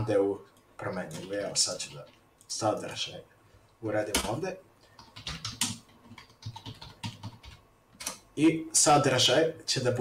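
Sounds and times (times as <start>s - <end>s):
computer keyboard typing: 5.0s - 8.2s.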